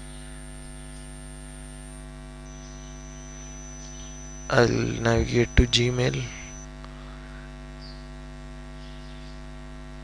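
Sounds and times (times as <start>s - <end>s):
electrical mains hum: 0.0s - 10.0s
faint high-pitched whine: 0.0s - 10.0s.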